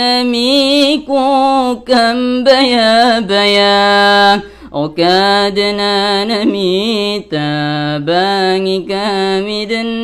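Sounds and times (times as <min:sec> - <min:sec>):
young man singing alone: 0:00.0 - 0:10.0.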